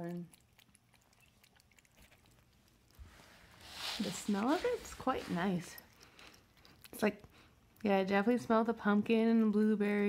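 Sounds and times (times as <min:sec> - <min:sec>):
cat chewing and licking food: 0:00.0 - 0:10.0.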